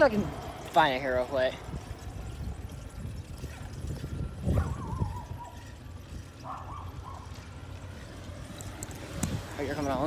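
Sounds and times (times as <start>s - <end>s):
wind rumbling on microphone: 1.5s - 10.0s.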